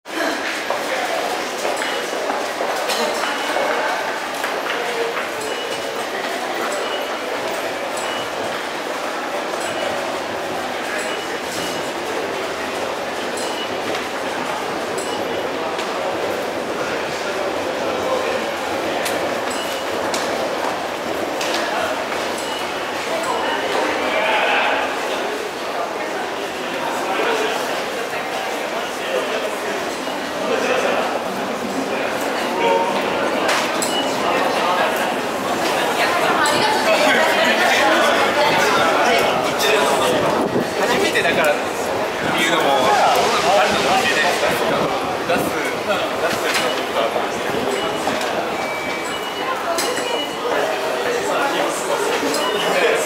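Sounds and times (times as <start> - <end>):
murmur of large underground hall: 0.0 - 53.0
many footsteps: 0.1 - 25.7, 26.8 - 53.0
indistinct commuter voices: 0.1 - 53.0.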